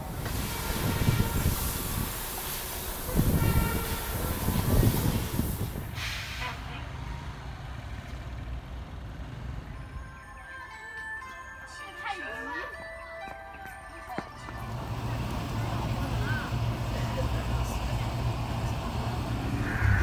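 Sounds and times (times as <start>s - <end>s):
street traffic rumbling: 0.0s - 20.0s.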